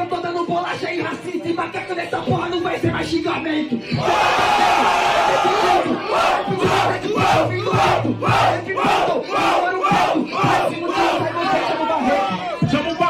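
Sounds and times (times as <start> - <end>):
crowd shouting and cheering: 3.7 - 13.0
crowd rhythmic chant: 3.9 - 13.0.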